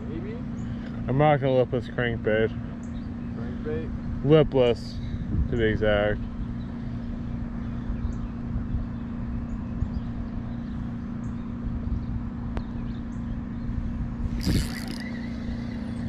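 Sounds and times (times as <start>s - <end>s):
steady low hum: 0.0s - 16.0s
wind rumbling on microphone: 5.0s - 5.8s, 13.6s - 16.0s
camera handling noise: 14.4s - 15.4s.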